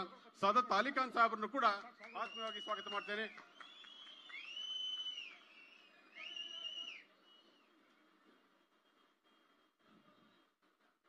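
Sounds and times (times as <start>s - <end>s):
long high sliding whistles: 2.1s - 7.8s.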